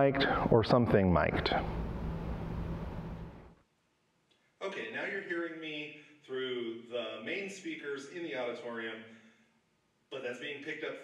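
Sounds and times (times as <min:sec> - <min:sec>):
microphone hiss: 0:00.0 - 0:11.0
low hum: 0:01.2 - 0:03.6.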